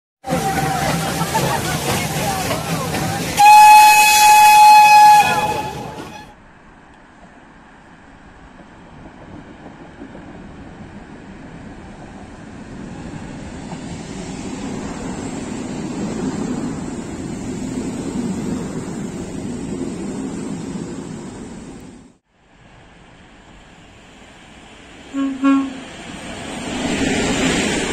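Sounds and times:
steam locomotive hissing: 0:00.2 - 0:06.3, 0:23.5 - 0:27.9
electric train rumbling on rails: 0:00.2 - 0:27.9
steam whistle: 0:03.3 - 0:06.3, 0:25.1 - 0:25.9.

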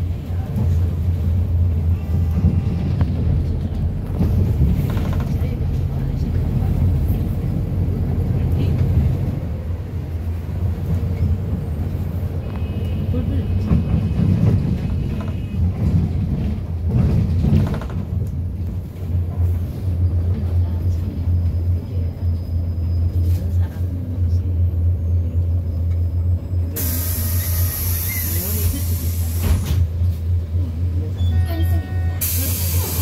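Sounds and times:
bus engine drone: 0:00.0 - 0:33.0.

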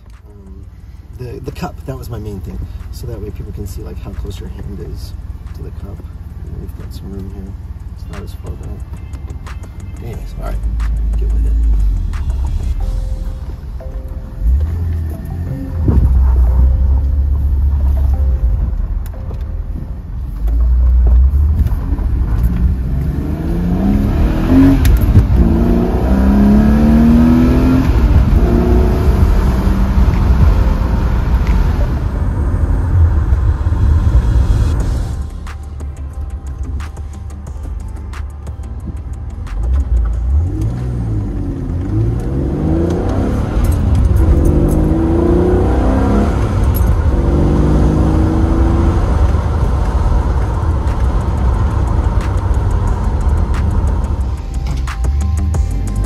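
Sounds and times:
car engine accelerating through gears: 0:01.4 - 0:37.1, 0:38.8 - 0:56.0.

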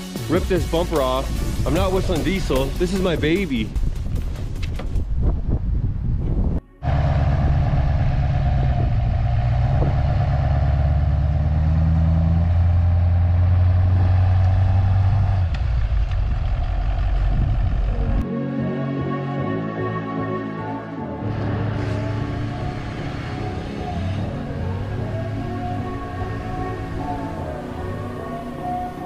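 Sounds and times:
diesel pickup engine idling: 0:06.8 - 0:18.2.

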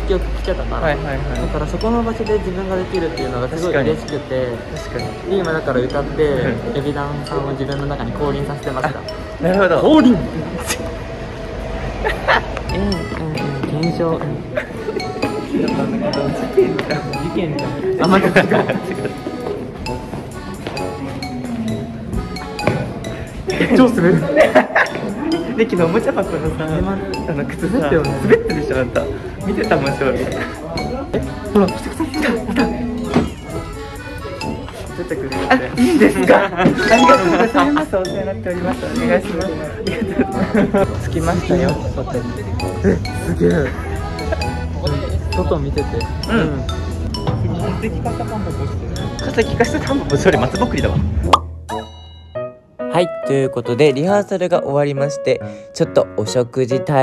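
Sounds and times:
people chattering: 0:00.0 - 0:51.4
music with chiming notes: 0:00.1 - 0:10.8, 0:12.1 - 0:54.3
pop music with singing: 0:15.2 - 0:33.6.

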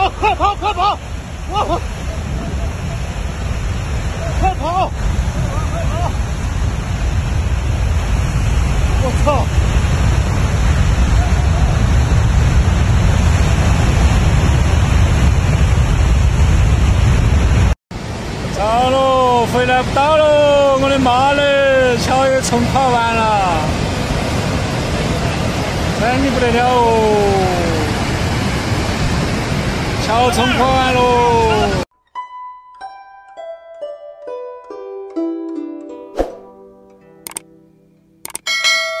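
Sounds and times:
plucked-string tune: 0:31.9 - 0:39.0
bright bell chime: 0:38.4 - 0:39.0.

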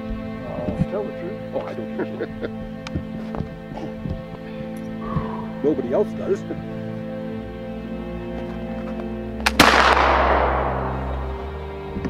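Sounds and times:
rifle shot report: 0:09.4 - 0:11.5.

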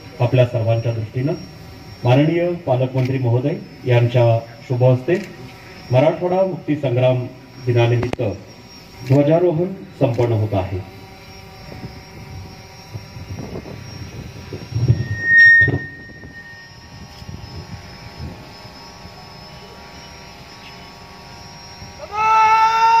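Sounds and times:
shrill whistle blast: 0:14.7 - 0:18.0.

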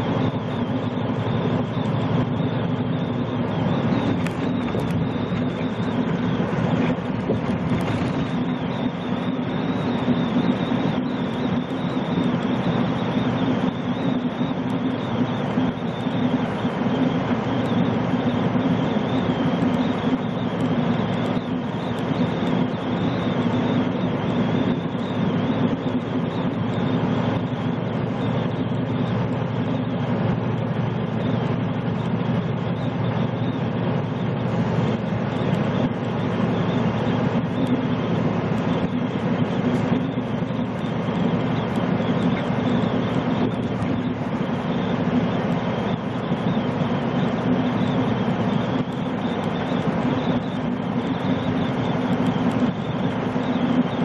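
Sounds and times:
tyre and road noise: 0:00.0 - 0:14.8
truck diesel engine hum: 0:00.0 - 0:54.0.

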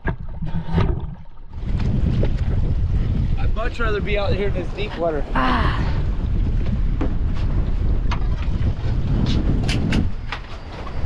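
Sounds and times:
water sloshing: 0:00.0 - 0:03.1
wind buffeting microphone: 0:00.0 - 0:11.0.

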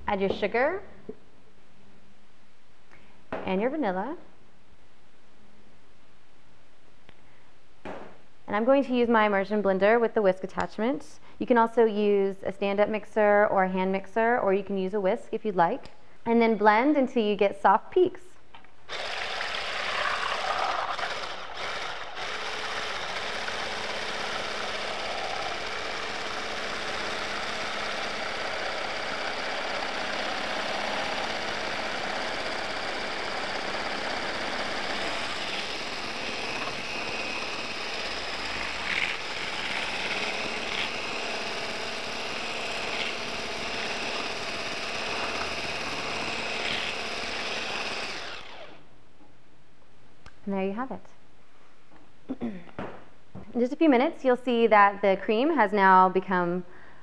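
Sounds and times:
immersion blender whipping cream: 0:18.9 - 0:48.8.

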